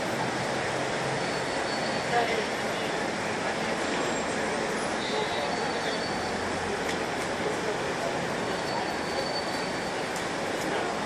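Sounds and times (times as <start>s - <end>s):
city street background noise: 0.0s - 11.0s.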